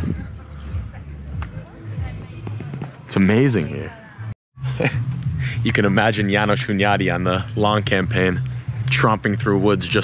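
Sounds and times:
faint music: 0.0s - 10.0s
people talking: 0.0s - 10.0s.

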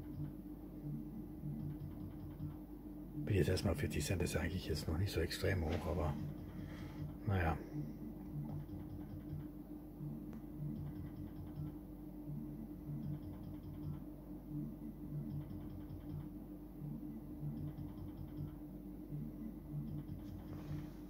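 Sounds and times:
low electronic hum: 0.0s - 21.0s.

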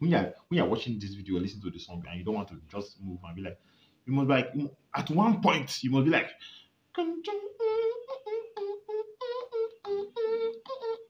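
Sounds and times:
man humming high tune: 7.0s - 11.0s.

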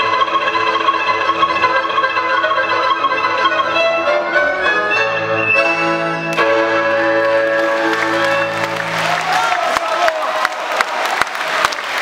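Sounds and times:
accordion: 0.0s - 8.9s
double bass: 0.0s - 9.3s
violin: 0.0s - 9.3s.

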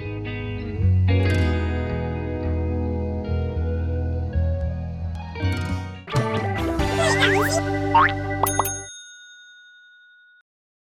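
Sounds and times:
bell-like chime: 8.4s - 10.4s.

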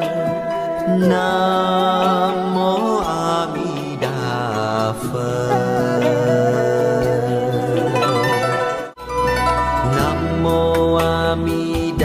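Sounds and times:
person chanting: 0.0s - 9.0s
accompanying music: 0.0s - 12.0s.

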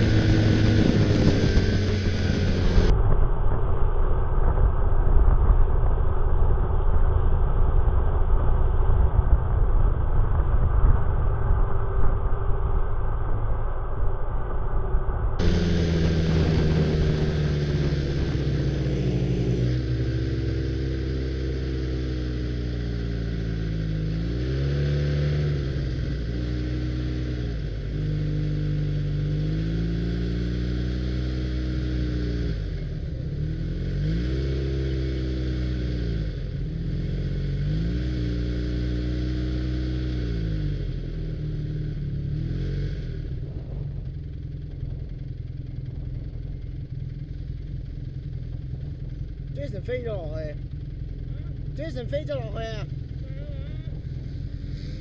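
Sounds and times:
snowmobile engine revving: 0.0s - 2.9s, 15.4s - 43.8s, 48.8s - 55.0s.

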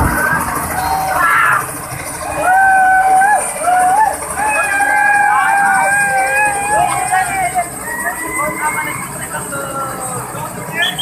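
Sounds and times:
children shouting: 0.0s - 10.4s
helicopter rotor running: 0.0s - 11.0s.

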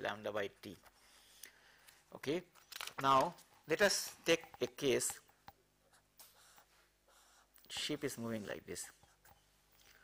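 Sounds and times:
drawing strokes scratching: 5.9s - 9.8s.

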